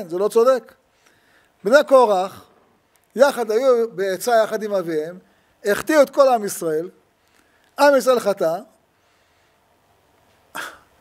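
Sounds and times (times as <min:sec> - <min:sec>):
man breathy huff: 0:10.5 - 0:11.0.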